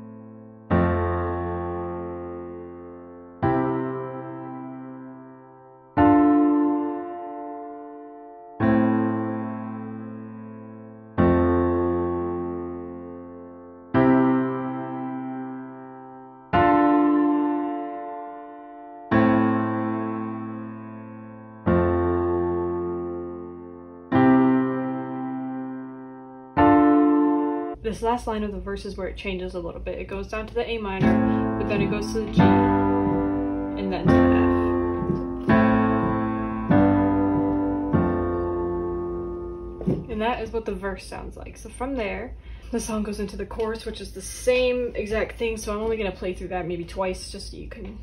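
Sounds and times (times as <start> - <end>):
piano chords with bass notes: 0.0 - 27.8, 30.9 - 40.6.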